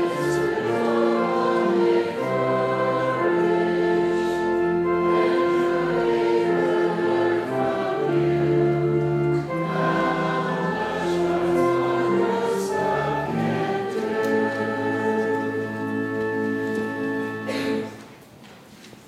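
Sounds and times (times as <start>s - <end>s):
choral singing: 0.0s - 18.0s
slow church music: 0.0s - 19.0s.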